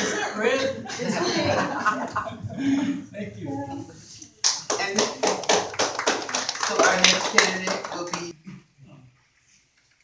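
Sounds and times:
audience applause: 4.5 - 8.3.

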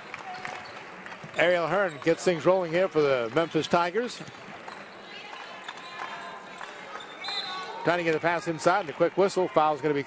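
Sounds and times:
sneakers squeaking on floor: 0.3 - 2.4, 6.9 - 7.8.

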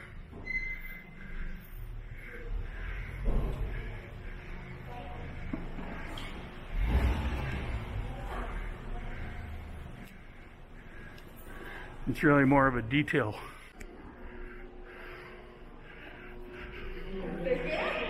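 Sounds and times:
low rumble of parking garage: 0.0 - 18.0
faint indistinct voices: 1.2 - 12.3.

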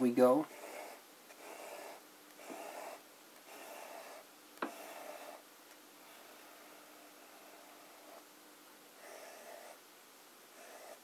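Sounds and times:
pen nib scratching paper: 0.5 - 5.4, 9.0 - 9.8, 10.5 - 11.0.

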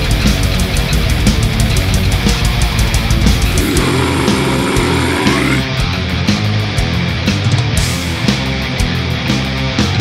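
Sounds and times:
death metal band playing: 0.6 - 8.1.

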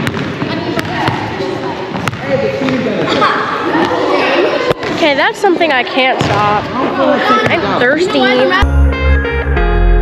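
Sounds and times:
basketball bouncing on hardwood floor: 0.0 - 1.2, 1.9 - 2.8, 6.2 - 6.4.

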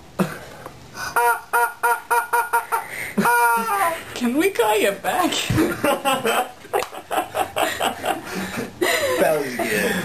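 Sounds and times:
woman laughing: 1.2 - 4.1, 5.4 - 10.0.

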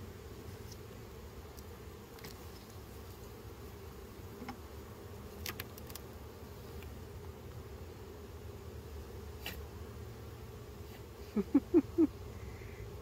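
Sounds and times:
honeybees humming: 0.0 - 13.0.

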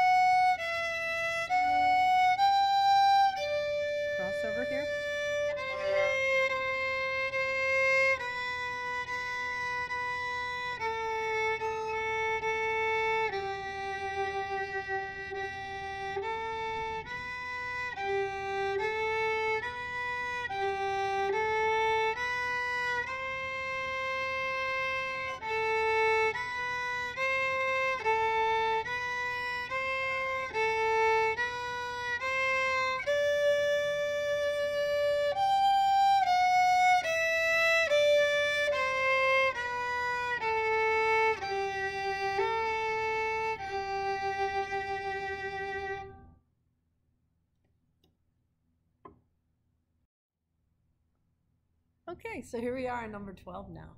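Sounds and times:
solo violin slow melody: 0.0 - 46.4.

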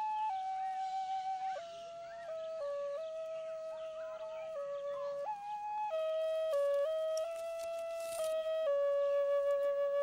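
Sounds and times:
flute playing slow melody: 0.0 - 10.0.

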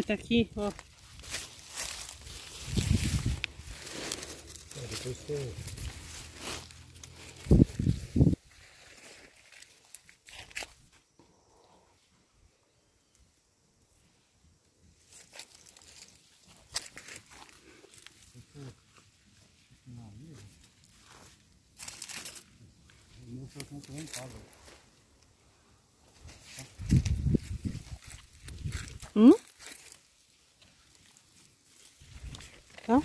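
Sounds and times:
dry leaves rustling and crackling: 0.0 - 10.9, 15.0 - 25.1, 26.0 - 33.0.

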